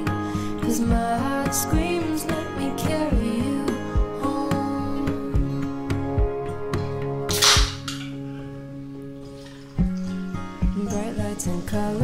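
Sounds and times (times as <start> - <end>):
background music: 0.0 - 12.0
drink can cracked open: 7.3 - 8.2.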